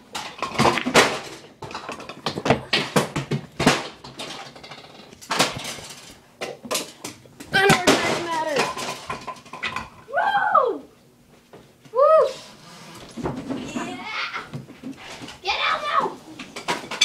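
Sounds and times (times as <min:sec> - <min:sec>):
pool balls clacking together: 0:00.0 - 0:10.1, 0:16.4 - 0:17.0.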